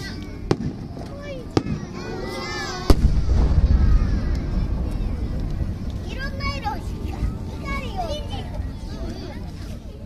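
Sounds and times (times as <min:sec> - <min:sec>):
spectators' voices: 0:00.0 - 0:10.0
firework shell bursting: 0:02.9 - 0:06.5.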